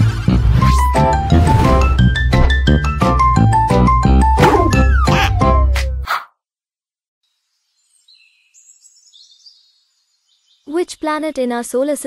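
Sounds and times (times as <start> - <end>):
faint bird chirping: 7.3 - 11.2.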